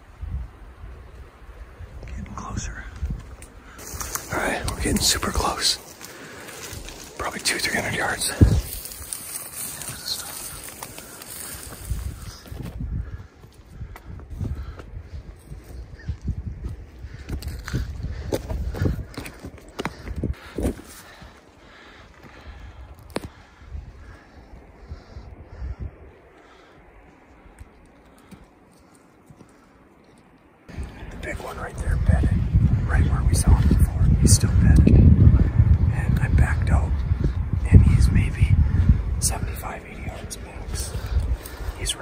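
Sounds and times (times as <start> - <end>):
footsteps in dry grass: 3.0 - 25.2, 36.8 - 42.0.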